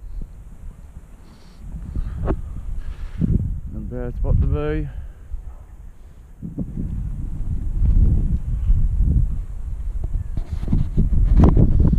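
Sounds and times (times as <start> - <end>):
wind buffeting microphone: 0.0 - 11.9.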